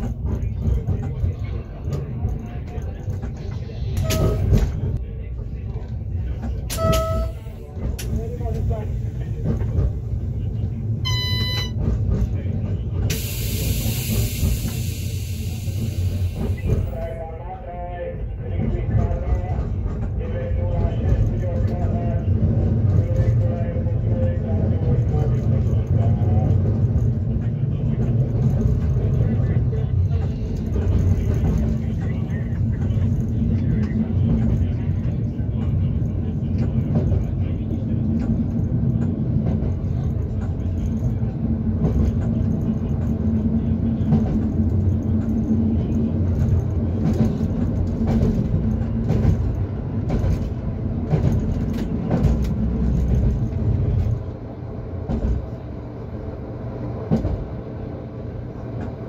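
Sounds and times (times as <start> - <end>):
train rumble: 0.0 - 59.0.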